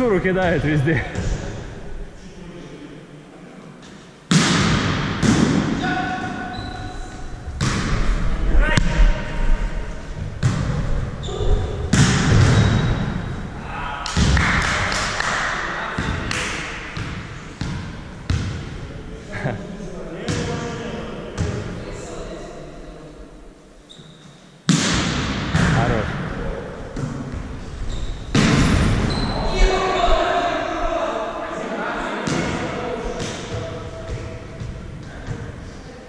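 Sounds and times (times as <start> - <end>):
volleyball smacks and bounces: 4.3 - 5.7, 7.6 - 8.0, 11.9 - 12.8, 24.7 - 25.8, 28.3 - 29.0.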